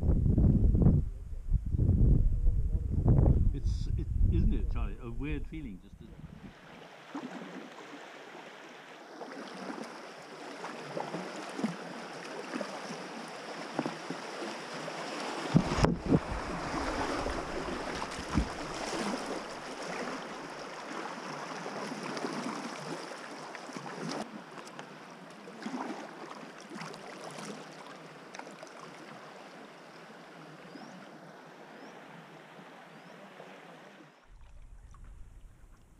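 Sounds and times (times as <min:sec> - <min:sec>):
water splashing and trickling: 0:06.1 - 0:29.3, 0:34.2 - 0:35.9
paddle splashes: 0:06.1 - 0:29.7, 0:30.7 - 0:35.9.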